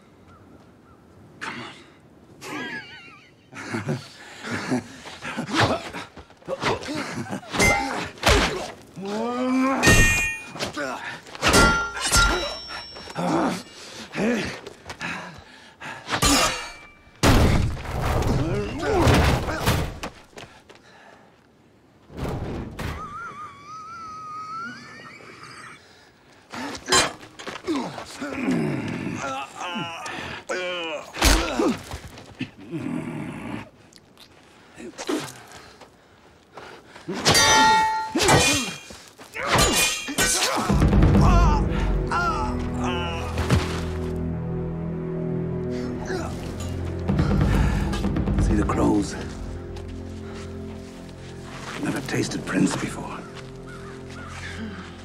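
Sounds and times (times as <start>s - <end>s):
metallic sword clangs: 9.8s - 10.7s, 11.4s - 13.0s, 37.3s - 38.8s, 39.5s - 40.7s
sword striking a shield: 9.8s - 10.7s, 11.4s - 12.6s.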